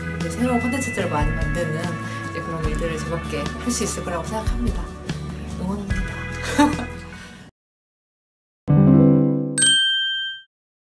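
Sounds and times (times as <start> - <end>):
bright bell-like ding: 9.6 - 10.5.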